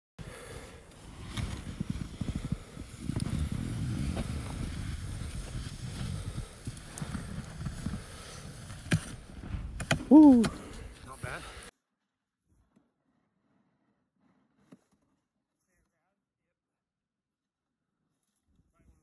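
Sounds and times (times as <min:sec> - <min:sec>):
snow scoop scraping through snow: 0:00.6 - 0:09.3.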